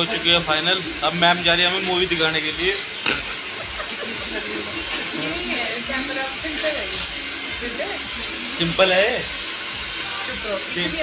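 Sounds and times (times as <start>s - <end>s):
steady blowing hiss: 0.0s - 11.0s.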